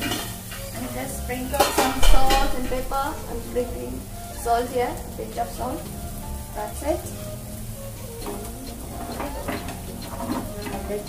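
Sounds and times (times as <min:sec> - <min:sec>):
spatula scraping frying pan: 0:00.0 - 0:03.8, 0:07.0 - 0:11.0.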